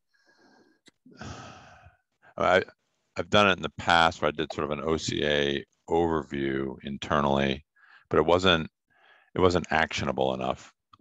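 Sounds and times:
man sighing: 1.1s - 1.9s
man speaking: 2.4s - 8.7s, 9.4s - 10.8s.

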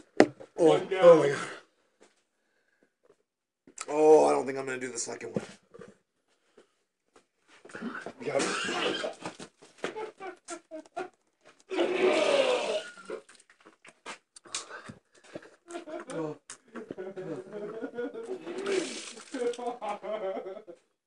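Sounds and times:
small clicks and gulps: 12.9s - 17.0s, 18.2s - 19.7s.

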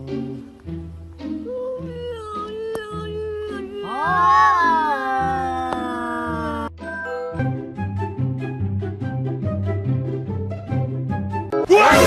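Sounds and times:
background music: 0.0s - 12.0s
cat meowing: 2.2s - 6.7s.

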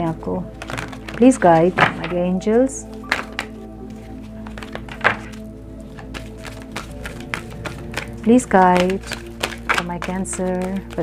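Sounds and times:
background music: 0.0s - 11.0s
cards being shuffled: 0.4s - 2.3s, 2.9s - 11.0s.

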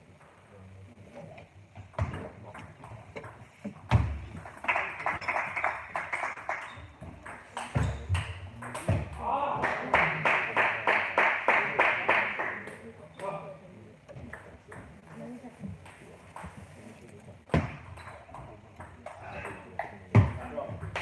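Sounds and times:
rhythmic clapping: 4.4s - 8.9s, 9.6s - 12.8s.

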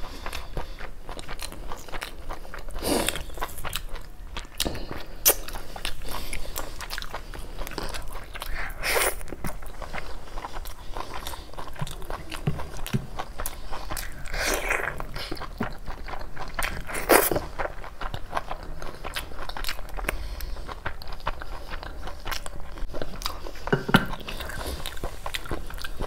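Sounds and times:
person chewing and biting food: 0.0s - 26.0s.

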